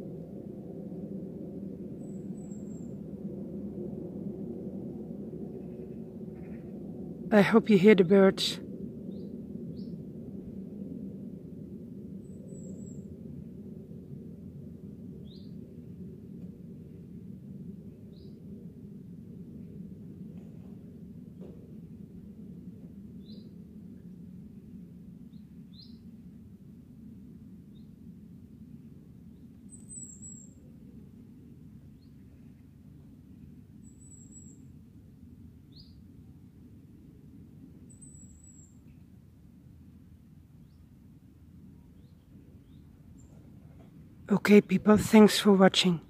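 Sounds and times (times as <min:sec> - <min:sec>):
low background rumble: 0:00.0 - 0:46.0.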